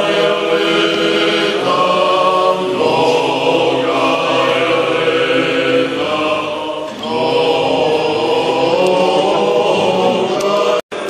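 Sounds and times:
choir chanting sustained notes: 0:00.0 - 0:11.0.

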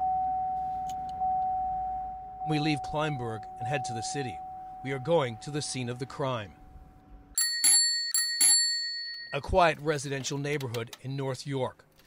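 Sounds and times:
small metal bell ringing: 0:07.4 - 0:09.4.

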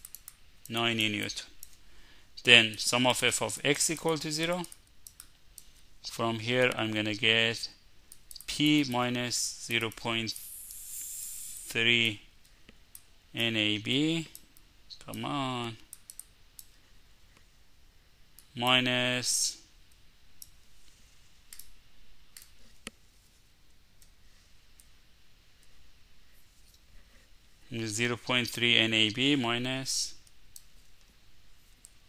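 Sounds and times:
low background hiss: 0:00.0 - 0:32.0.

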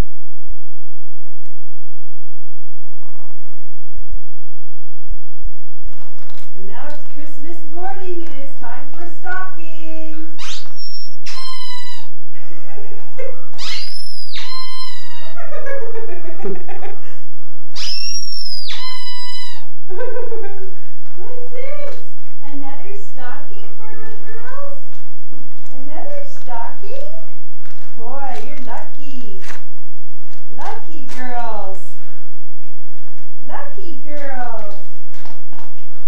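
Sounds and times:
high-pitched squeals: 0:10.3 - 0:12.3, 0:13.4 - 0:15.5, 0:17.7 - 0:19.8
indistinct talk: 0:21.2 - 0:24.9.

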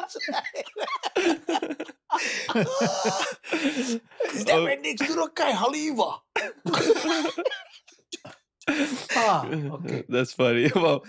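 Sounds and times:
men laughing: 0:00.0 - 0:04.6, 0:06.4 - 0:09.7.

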